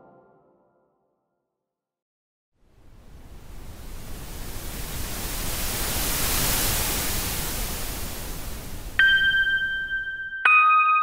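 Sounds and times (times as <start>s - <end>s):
rushing hiss intro effect: 2.6s - 10.2s.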